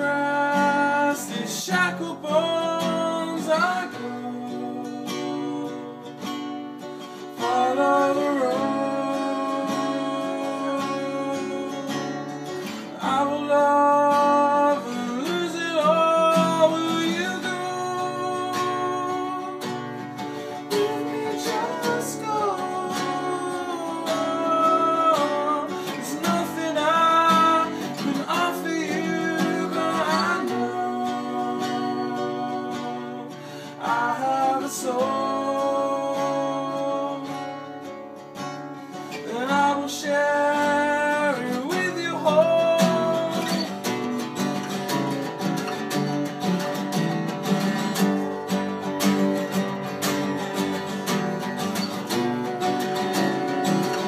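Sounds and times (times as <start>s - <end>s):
man and woman singing: 0.0s - 5.9s, 7.3s - 37.6s, 39.0s - 43.9s, 52.6s - 54.0s
acoustic guitars strummed: 0.0s - 54.0s.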